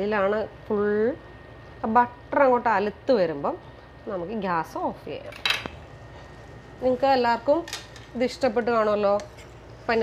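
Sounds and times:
woman's voice: 0:01.8 - 0:05.4, 0:06.8 - 0:09.3.

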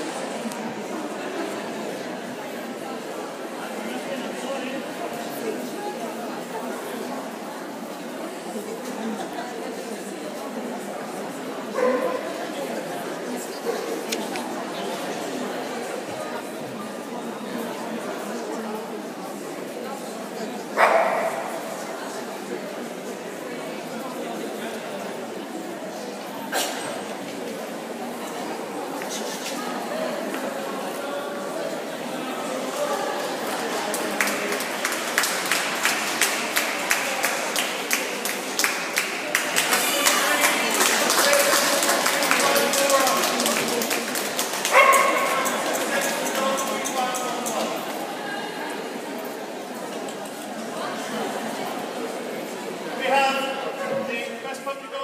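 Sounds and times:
crowd chatter in a large hall: 0:00.0 - 0:55.0
dog barking: 0:11.8 - 0:12.2, 0:20.8 - 0:21.4, 0:44.7 - 0:45.4.

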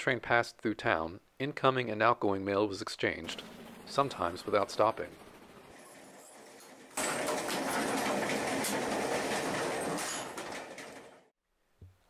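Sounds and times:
wheels clattering on rails: 0:03.2 - 0:11.3.

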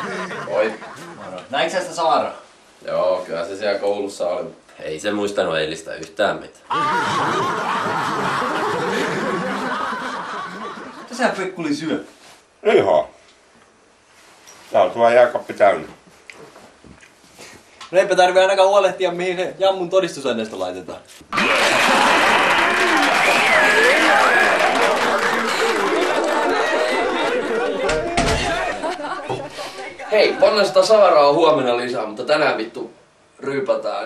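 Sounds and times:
crowd laughing: 0:00.0 - 0:01.5, 0:06.7 - 0:11.2, 0:21.3 - 0:30.8
people cheering: 0:06.7 - 0:10.8, 0:21.3 - 0:30.8
applause: 0:21.3 - 0:28.1.

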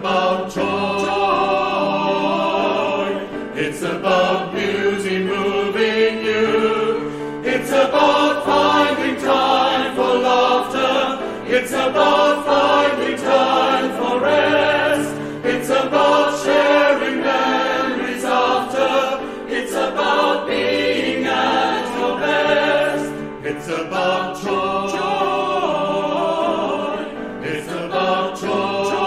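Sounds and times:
choir singing in harmony: 0:00.0 - 0:29.0
piano accompaniment: 0:00.0 - 0:29.0.

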